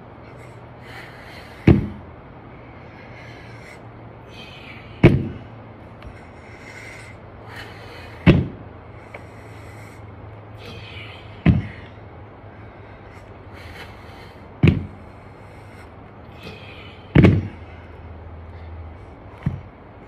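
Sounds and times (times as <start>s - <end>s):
dumbbells thudding on ground: 1.6s - 2.0s, 5.0s - 5.4s, 8.2s - 8.6s, 11.4s - 11.8s, 14.6s - 15.0s, 17.1s - 17.6s, 19.4s - 19.7s.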